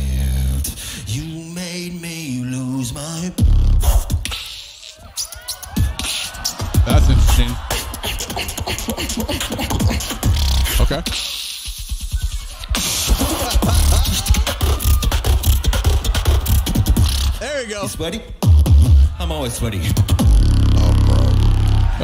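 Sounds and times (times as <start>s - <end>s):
beatboxing through a microphone: 0.0s - 17.4s, 18.2s - 22.0s.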